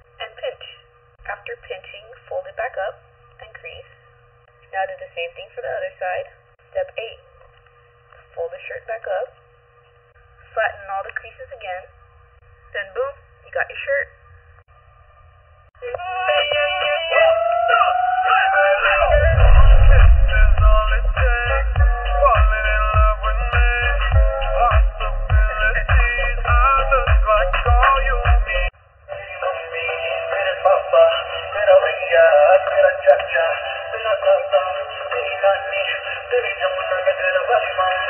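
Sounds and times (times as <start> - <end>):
song with synthetic singing: 15.8 - 38.0
background music: 15.9 - 38.0
rising howl-like sliding tone: 18.5 - 21.6.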